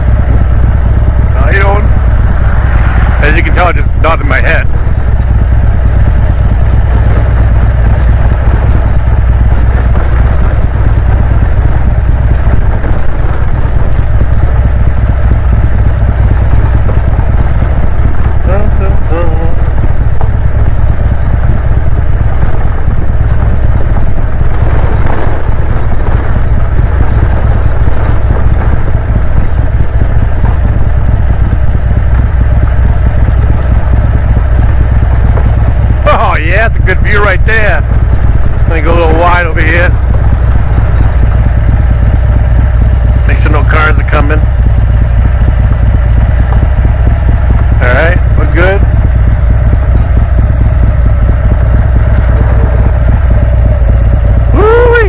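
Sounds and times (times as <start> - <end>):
motorcycle engine idling: 0.0 - 55.0
wind rumble on microphone: 0.0 - 55.0.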